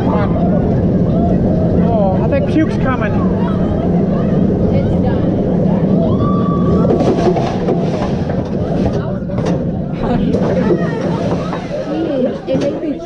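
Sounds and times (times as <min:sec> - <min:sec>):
riders chattering and calling out: 0:00.0 - 0:07.0, 0:08.2 - 0:13.0
roller coaster train rumbling: 0:00.0 - 0:13.0.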